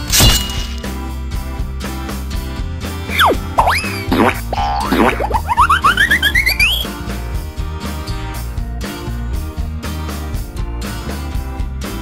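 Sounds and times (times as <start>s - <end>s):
children's background music: 3.1s - 6.9s
falling whistle: 3.1s - 6.9s
short notes stepping upward: 3.1s - 6.9s
springy boing sweeps: 3.1s - 6.9s.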